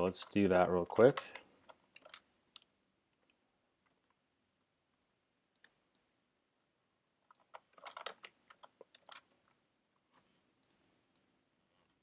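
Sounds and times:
keyboard typing clicks: 5.5 - 6.1, 7.3 - 9.3, 10.1 - 11.3.

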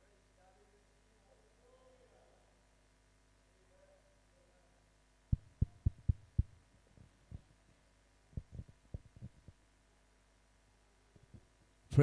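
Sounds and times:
microphone handling thumps: 5.3 - 7.5, 8.4 - 9.6.

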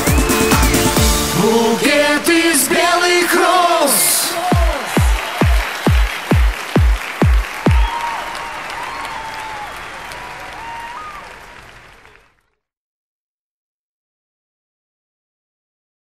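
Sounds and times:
audience applause: 3.5 - 12.6
deep kick drum beats: 4.5 - 7.9.

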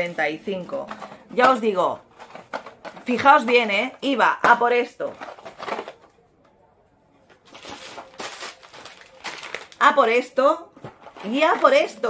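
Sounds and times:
plastic snack bags rustling: 0.0 - 3.6, 5.0 - 6.1, 7.3 - 12.0.

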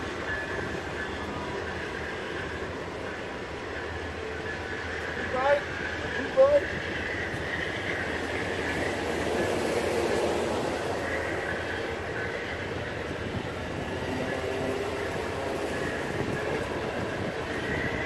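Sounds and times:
high wheel squeal: 0.0 - 18.0
train wheels rumbling on track: 0.0 - 18.0.

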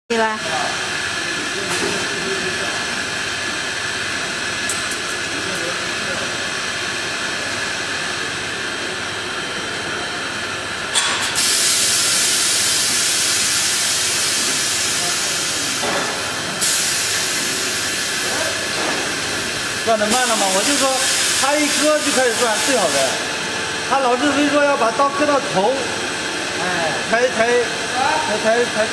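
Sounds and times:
loud hiss: 11.2 - 23.3.

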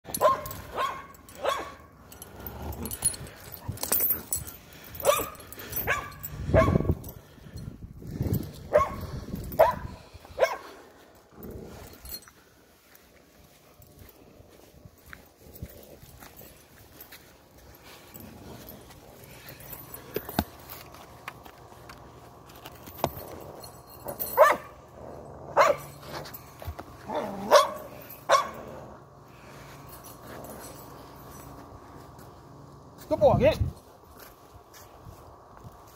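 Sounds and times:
dog barking: 0.2 - 1.9, 5.0 - 6.9, 8.7 - 9.0, 9.6 - 10.6, 24.4 - 24.7, 25.6 - 25.9, 27.2 - 28.6.

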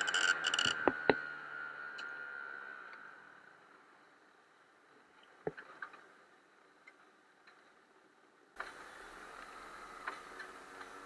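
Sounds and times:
muffled go-kart engine: 0.0 - 11.0.

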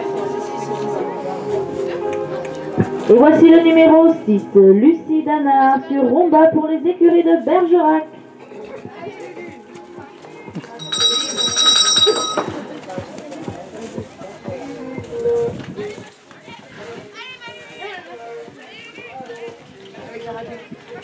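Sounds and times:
background music: 0.0 - 21.0
start bell ringing: 10.8 - 12.8.

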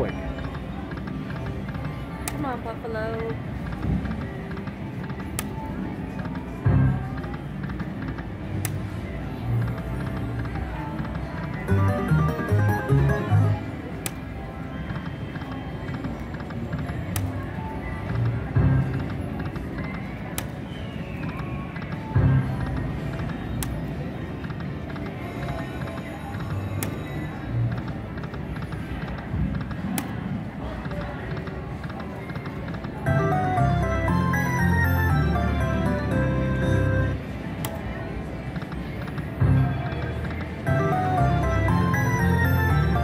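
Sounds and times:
casino background noise: 0.0 - 43.0
slot machine game sounds: 9.7 - 15.0, 32.5 - 37.6, 40.2 - 43.0
slot machine click: 11.4 - 14.2, 32.5 - 37.9, 40.4 - 43.0.

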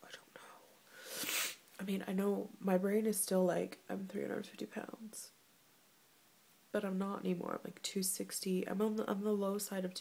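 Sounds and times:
woman speaking: 1.8 - 5.4, 6.8 - 10.0.

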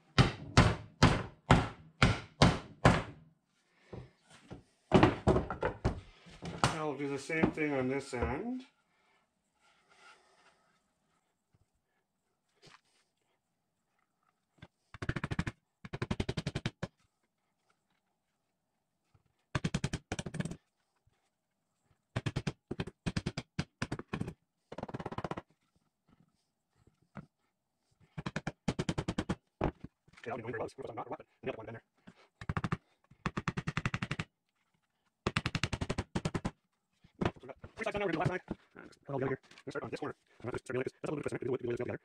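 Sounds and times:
hammer driving nails into wood: 0.1 - 3.2.

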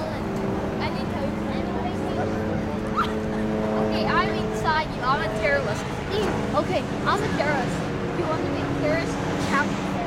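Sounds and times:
steady multi-tone hum: 0.0 - 10.0.

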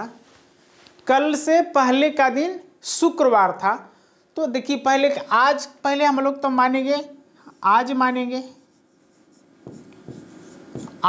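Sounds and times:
stylus scratching on screen: 7.5 - 11.0
stylus tapping on screen: 9.3 - 11.0.

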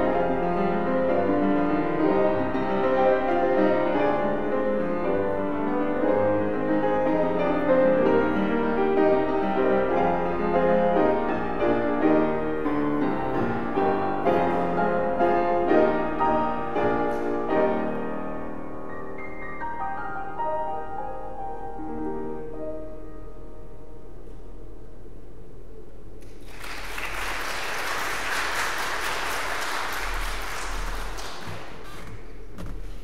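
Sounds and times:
grand piano playing: 0.0 - 25.8.

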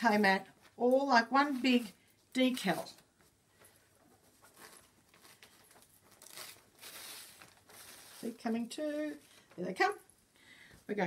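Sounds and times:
fabric crinkling and rustling: 0.0 - 10.3.

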